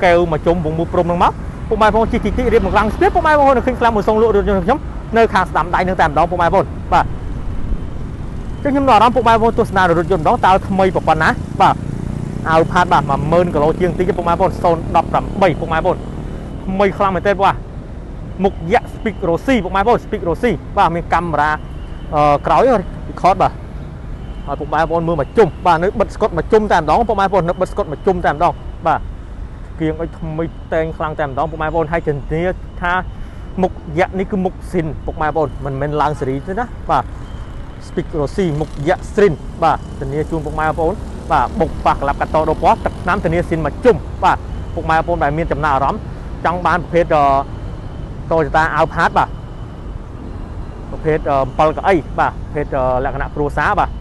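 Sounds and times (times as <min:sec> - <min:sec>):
person talking: 0:00.0 - 0:07.1, 0:12.4 - 0:16.0, 0:50.9 - 0:54.0
man talking: 0:00.0 - 0:07.2, 0:08.6 - 0:17.6, 0:18.3 - 0:23.6, 0:24.4 - 0:29.1, 0:29.7 - 0:37.1, 0:37.8 - 0:47.5, 0:48.3 - 0:49.3, 0:50.9 - 0:54.0.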